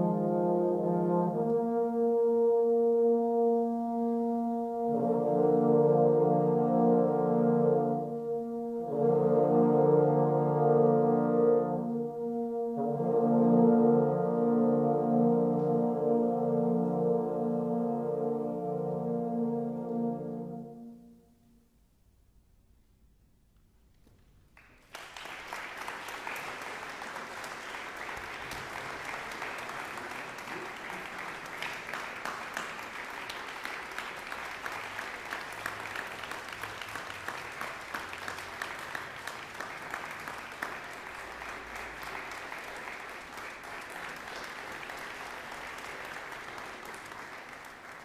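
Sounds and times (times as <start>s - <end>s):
audience applause: 24.6s - 48.0s.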